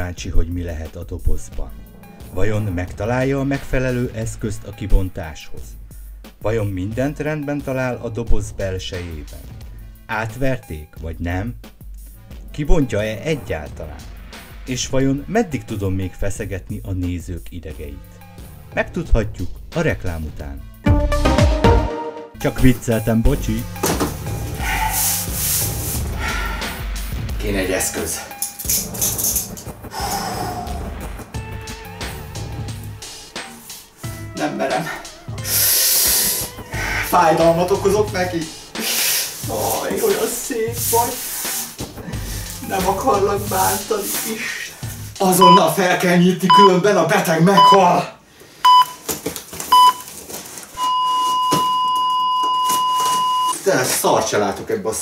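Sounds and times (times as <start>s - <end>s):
background music: 0.0s - 49.0s
heart monitor beeps: 45.4s - 45.7s, 46.5s - 46.7s, 47.6s - 47.8s, 48.6s - 49.0s, 49.7s - 50.0s, 50.8s - 53.6s.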